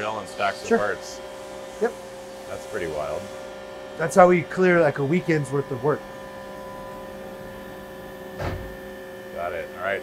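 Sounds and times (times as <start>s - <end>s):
machining cell hum: 4.4s - 10.0s
short thump: 8.4s - 8.8s.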